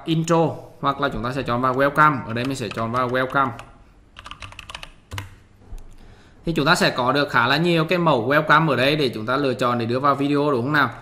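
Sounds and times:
keyboard keys clicking: 0:01.6 - 0:05.4.

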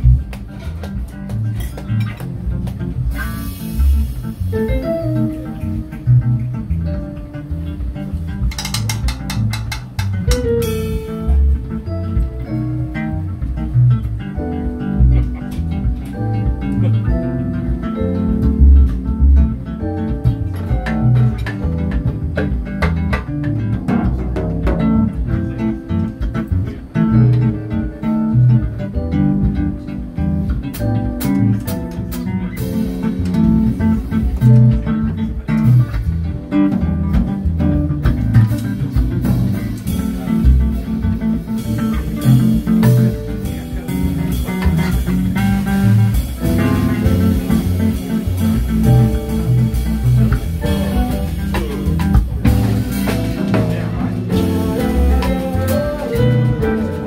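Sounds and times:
live band playing instrumental groove: 0:00.0 - 0:57.0
loud bass and drums: 0:00.0 - 0:57.0.

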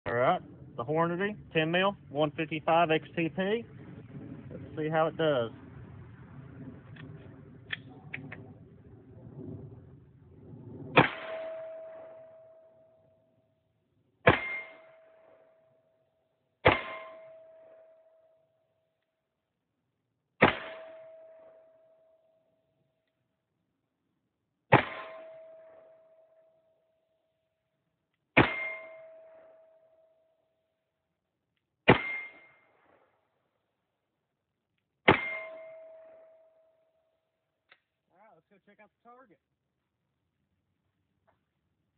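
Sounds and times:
pistol shots: 0:14.2 - 0:15.0, 0:20.4 - 0:21.1, 0:28.4 - 0:29.4, 0:31.9 - 0:32.6, 0:35.1 - 0:36.0
bullet clanging on steel target: 0:35.1 - 0:36.6.

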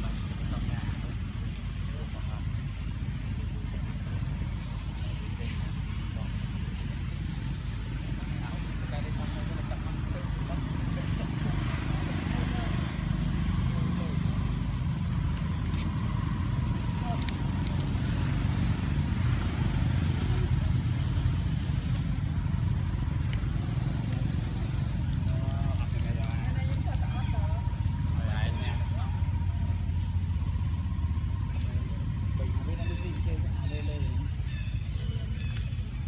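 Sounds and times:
low outdoor rumble: 0:00.0 - 0:36.0.

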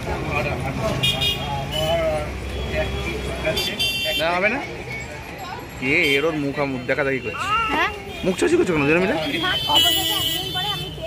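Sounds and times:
indistinct talking: 0:00.0 - 0:11.0
street traffic rumble: 0:00.0 - 0:11.0.

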